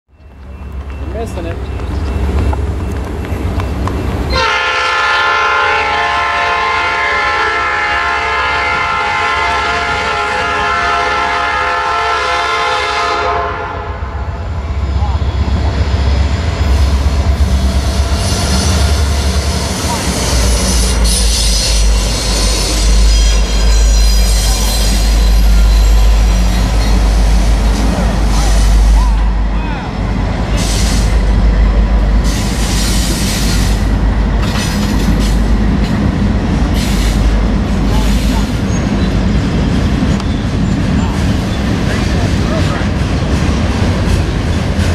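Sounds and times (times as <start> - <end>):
diesel locomotive engine rumble: 0.1 - 44.9
train air horn: 4.3 - 14.3
steel wheels clattering on rails: 15.0 - 44.9.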